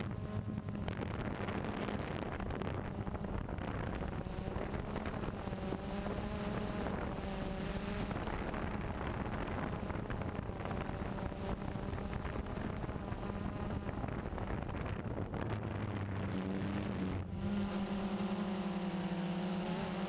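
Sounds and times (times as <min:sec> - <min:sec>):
steady low hum: 0:00.0 - 0:20.0
wind on microphone: 0:00.0 - 0:20.0.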